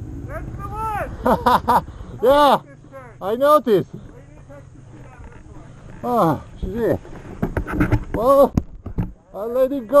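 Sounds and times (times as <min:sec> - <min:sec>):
distant talking: 0:00.0 - 0:07.3
low steady rumble: 0:00.0 - 0:09.3.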